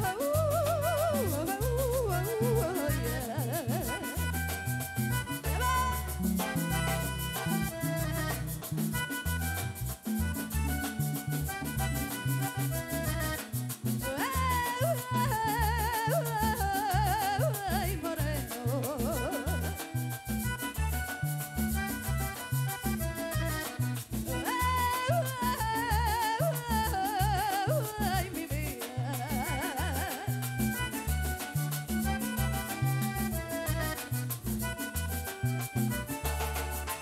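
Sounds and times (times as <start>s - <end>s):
woman singing: 0.0s - 4.3s, 14.0s - 20.0s, 24.3s - 30.8s
button accordion: 0.0s - 37.0s
live band playing: 0.0s - 37.0s.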